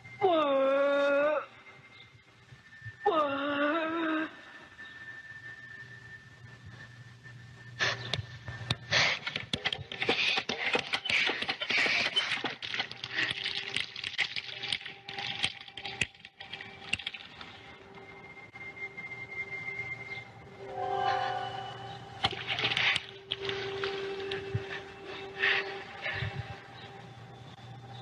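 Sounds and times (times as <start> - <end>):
film music chord: 20.5 - 22.8.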